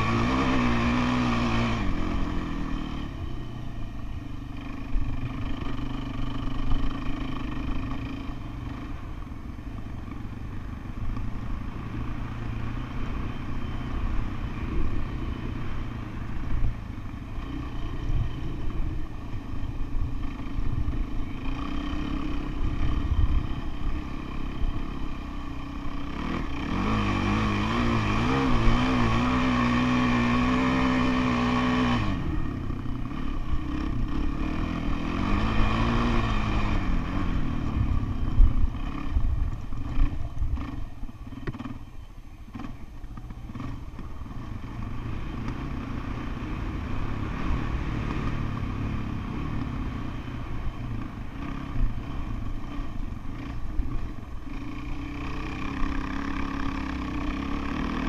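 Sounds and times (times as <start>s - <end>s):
dirt bike engine revving: 0.0s - 41.9s, 42.5s - 58.0s.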